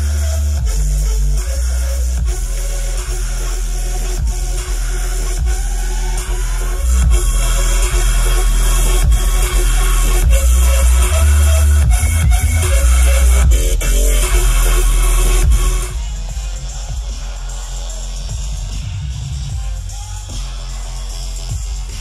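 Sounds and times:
dubstep over sound system: 0.0 - 22.0.

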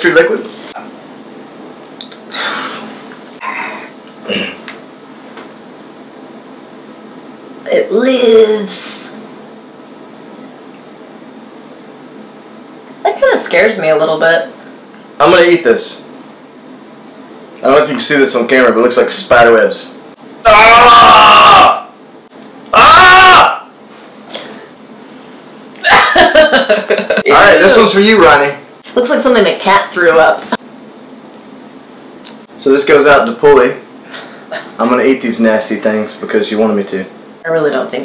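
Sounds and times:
room background hiss: 0.0 - 38.0
loud vocal exclamation: 20.4 - 22.0, 22.7 - 23.7
laughter: 25.8 - 27.3.

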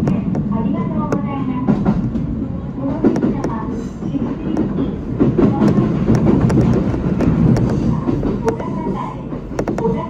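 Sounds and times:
train wheels rumbling on rail: 0.0 - 10.0
wheels clacking over rail joints: 0.0 - 10.0.

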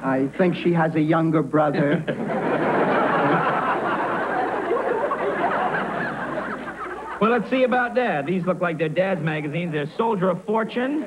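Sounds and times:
studio audience laughing: 1.8 - 8.5.

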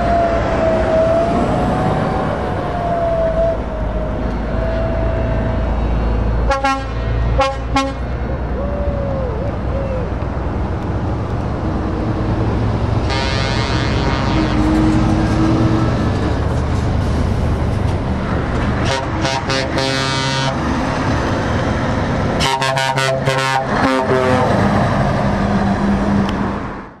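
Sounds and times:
truck engine rumbling: 0.0 - 27.0
air horn blasts: 6.4 - 8.1, 13.0 - 15.9, 18.8 - 20.6, 22.4 - 24.6.

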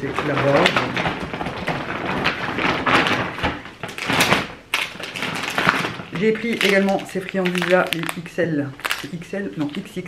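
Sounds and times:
plastic bag rustling: 0.0 - 10.0.

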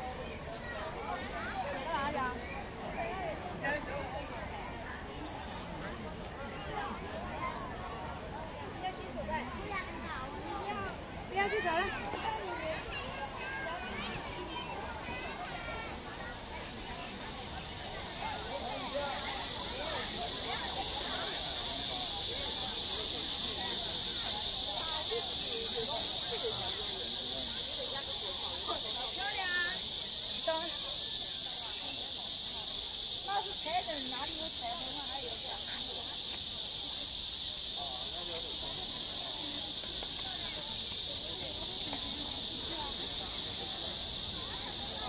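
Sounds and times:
faint voices of people: 0.0 - 45.0
fountain water jets hissing: 1.9 - 45.0.

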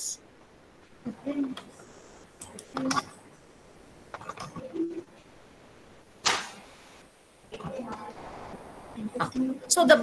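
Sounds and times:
noisy whoosh: 6.2 - 9.3.

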